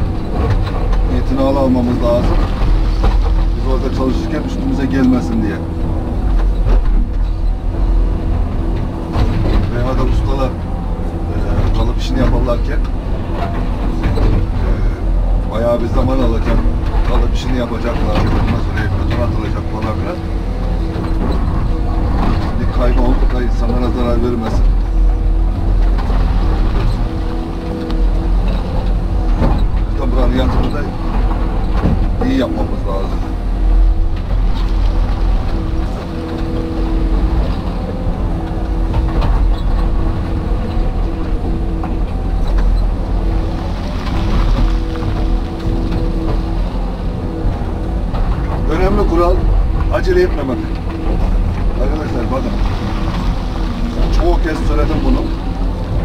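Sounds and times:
diesel engine running: 0:00.0 - 0:56.0
hydraulic whine: 0:00.0 - 0:56.0.

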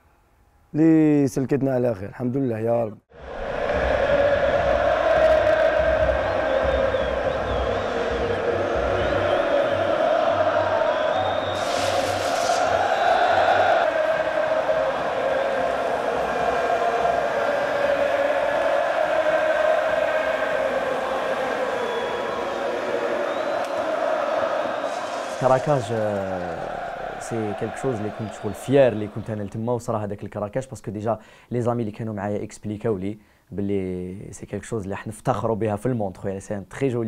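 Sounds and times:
stadium crowd singing chant: 0:03.1 - 0:29.5
low drum beat: 0:03.3 - 0:10.8
short hiss: 0:11.5 - 0:13.3.

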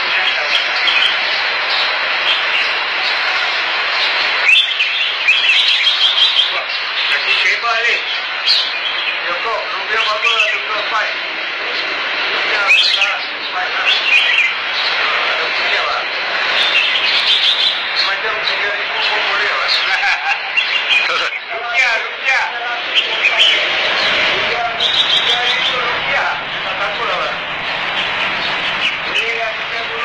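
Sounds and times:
birds chirping: 0:00.0 - 0:30.0
steady hiss: 0:00.0 - 0:30.0.

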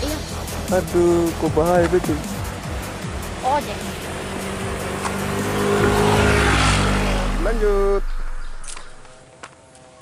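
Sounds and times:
motorcycle riding: 0:00.0 - 0:10.0.

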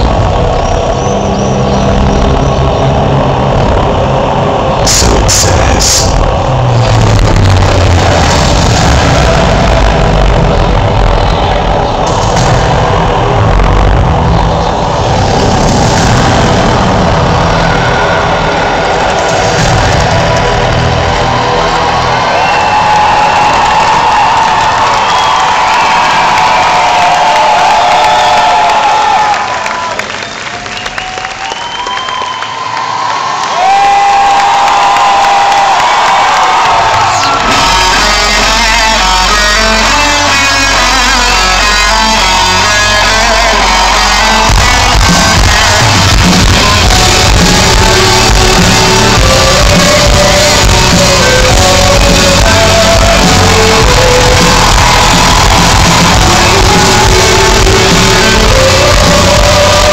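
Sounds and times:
loud concert music over pa: 0:00.0 - 0:32.7, 0:33.4 - 0:59.9
audience cheering: 0:00.0 - 0:59.9.

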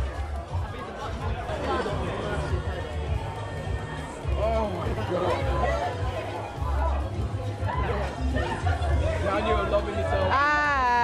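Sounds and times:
background music with bass: 0:00.0 - 0:11.0
people chattering: 0:00.0 - 0:11.0.

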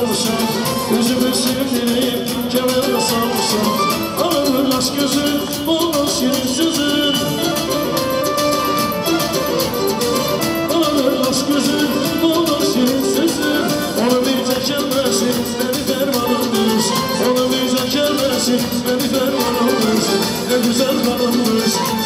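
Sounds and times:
electronic keyboard melody: 0:00.0 - 0:22.0
fast drum beat: 0:00.0 - 0:22.0.

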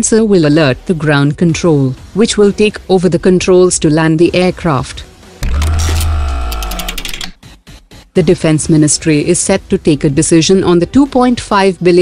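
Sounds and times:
deep bass hit: 0:05.4 - 0:06.6
quick clicks: 0:05.4 - 0:07.4.

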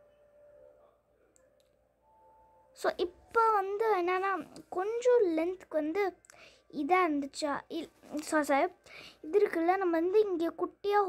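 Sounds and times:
person speaking: 0:02.8 - 0:11.0.

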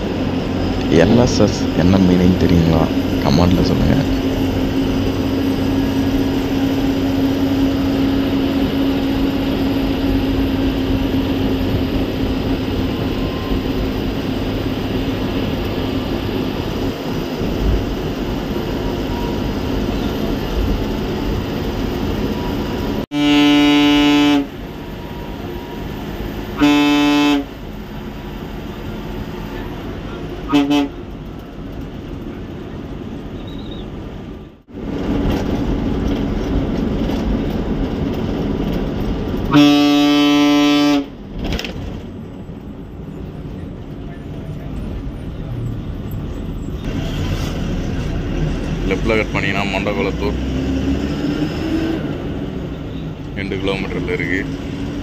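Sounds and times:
engine drone and road noise: 0:00.0 - 0:55.0
bus horn blasts: 0:23.1 - 0:27.8, 0:29.2 - 0:31.3, 0:39.4 - 0:41.2.

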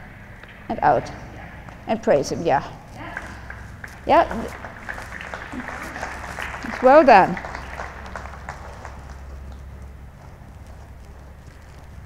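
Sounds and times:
steady low hum: 0:00.0 - 0:12.0
horse hooves on sand: 0:02.9 - 0:12.0.

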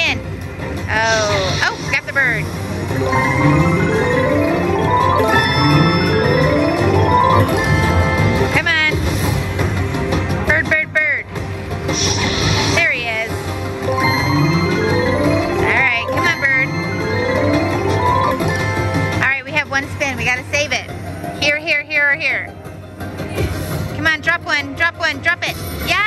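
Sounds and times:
slot machine music: 0:00.0 - 0:24.9
rising chime-like notes: 0:01.3 - 0:08.5, 0:13.5 - 0:19.1
swooping effects: 0:11.8 - 0:19.0.

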